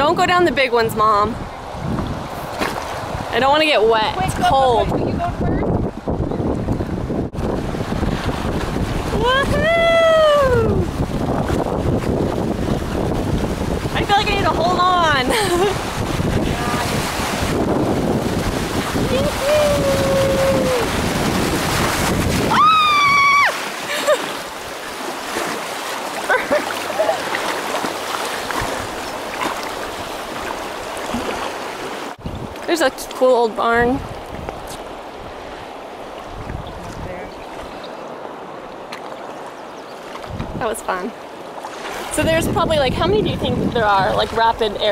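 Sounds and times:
wind buffeting microphone: 0.0 - 44.9
water rushing through rapids: 7.9 - 39.4
vocal whoops: 9.1 - 10.9, 19.1 - 20.9, 22.5 - 23.6.

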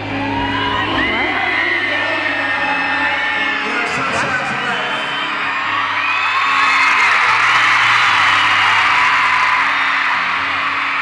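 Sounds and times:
crowd screaming and whooping: 0.0 - 11.0.

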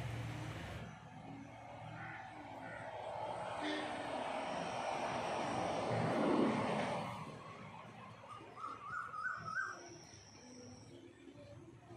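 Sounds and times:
passing vehicle: 0.0 - 9.6.

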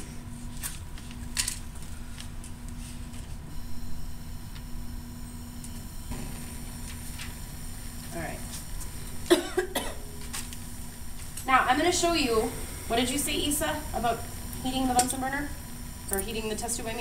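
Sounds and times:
gas hissing: 3.5 - 17.0.

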